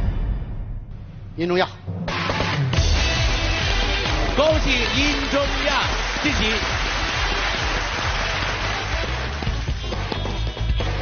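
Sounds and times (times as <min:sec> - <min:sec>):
audience applauding: 0:03.0 - 0:11.0.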